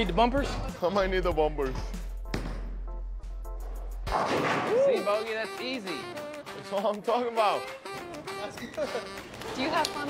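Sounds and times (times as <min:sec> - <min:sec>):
background music: 0:00.0 - 0:10.0
bowling pins crashing: 0:04.1 - 0:04.8.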